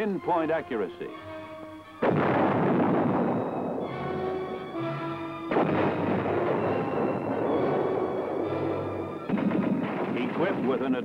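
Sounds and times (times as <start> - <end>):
rapid gunfire: 9.3 - 10.8.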